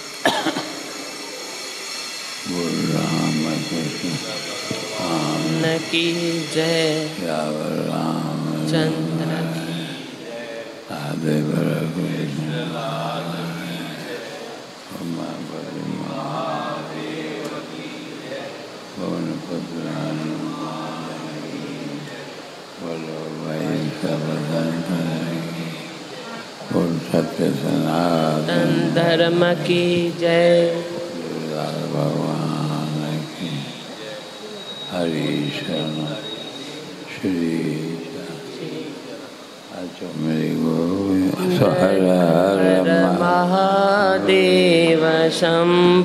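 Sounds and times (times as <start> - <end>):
recording hiss: 0.0 - 46.0
person coughing: 0.2 - 1.0
man chanting a long note: 2.4 - 34.2, 34.9 - 46.0
person calling out long: 41.4 - 42.1.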